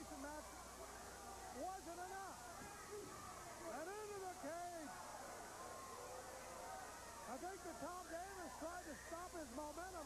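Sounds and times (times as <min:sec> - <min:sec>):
tape hiss: 0:00.0 - 0:10.0.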